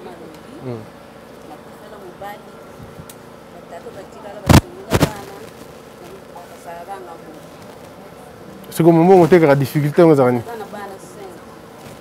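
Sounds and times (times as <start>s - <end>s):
faint buzzing hum: 0.0s - 12.0s.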